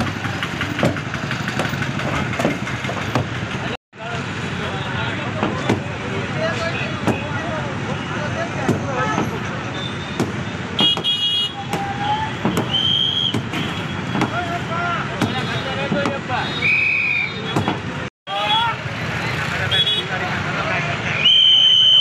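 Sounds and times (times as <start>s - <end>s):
sledgehammers striking a wall: 0.5s - 3.4s.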